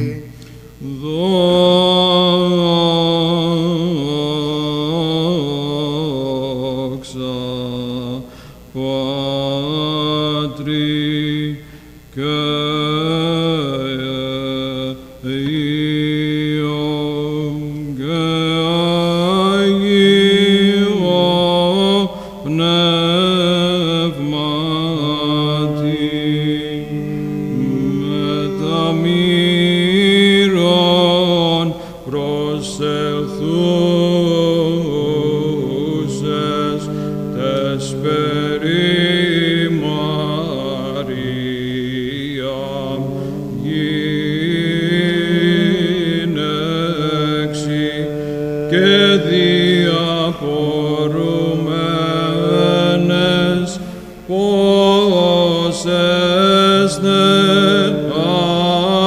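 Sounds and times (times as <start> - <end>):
low held drone note: 0.0 - 8.2, 8.8 - 55.7
men chanting melismatic melody: 12.2 - 59.0.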